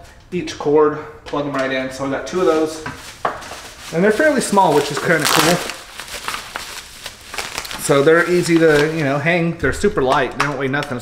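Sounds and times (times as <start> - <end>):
bubble wrap crinkling: 2.3 - 11.0.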